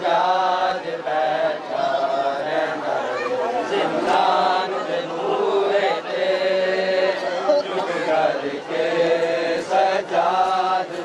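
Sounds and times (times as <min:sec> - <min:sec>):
group of men chanting: 0:00.0 - 0:11.0.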